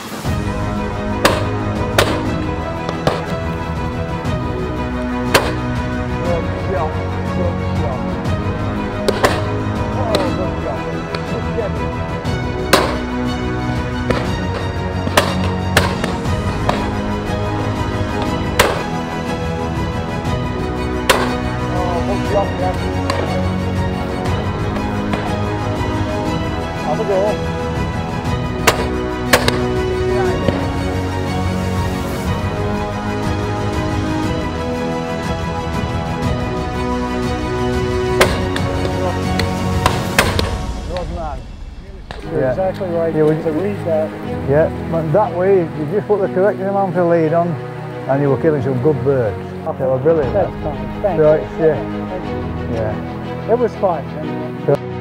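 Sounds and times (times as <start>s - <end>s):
background music: 0.0s - 55.0s
shotgun shots: 1.2s - 3.3s, 12.7s - 13.1s, 15.1s - 16.9s, 18.6s - 19.0s, 21.1s - 21.5s, 28.7s - 29.7s.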